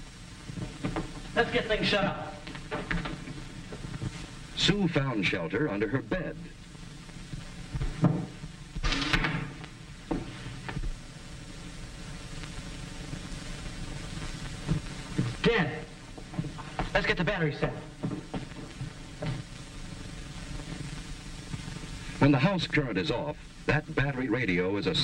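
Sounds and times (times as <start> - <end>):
film soundtrack hiss: 0.0 - 25.0.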